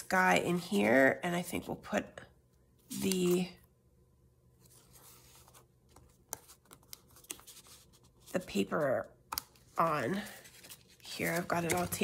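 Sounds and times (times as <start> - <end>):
paper handling: 4.6 - 12.0.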